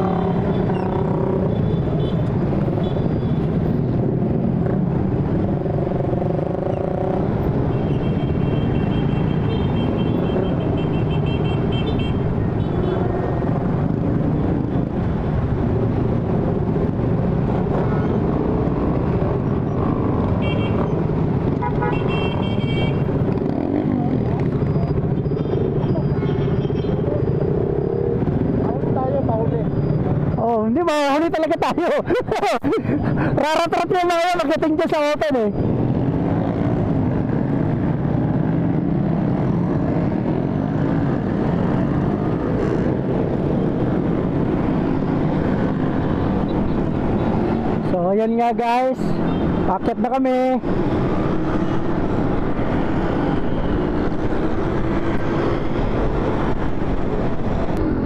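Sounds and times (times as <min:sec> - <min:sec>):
motorcycle engines running: 0:00.0 - 0:58.0.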